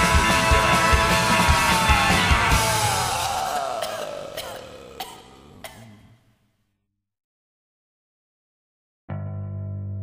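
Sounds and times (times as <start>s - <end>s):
rock band playing: 0.0s - 3.9s.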